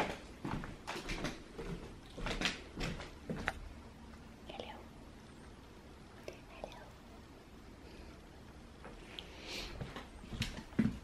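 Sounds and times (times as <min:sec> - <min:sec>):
soft whispering: 0:04.4 - 0:05.0, 0:06.2 - 0:08.3.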